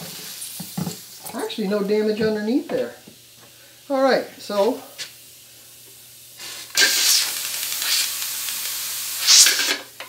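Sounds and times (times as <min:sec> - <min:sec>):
steam hissing from hose: 0:00.0 - 0:10.0.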